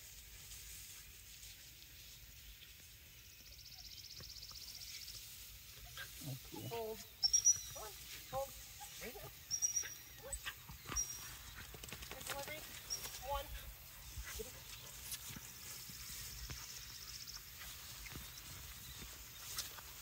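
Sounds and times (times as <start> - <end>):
footsteps through tall grass: 0.0 - 3.5, 4.2 - 20.0
high bird chirps: 7.0 - 8.0, 9.3 - 11.8.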